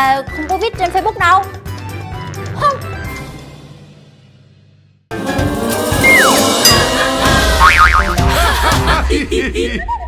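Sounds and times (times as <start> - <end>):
upbeat jingle: 6.3 - 8.0
fast wobbling warble: 7.6 - 8.2.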